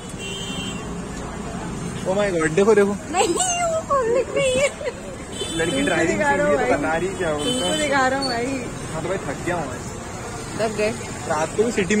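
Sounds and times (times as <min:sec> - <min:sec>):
street din: 0:00.0 - 0:12.0
scooters and motorbikes passing: 0:00.8 - 0:12.0.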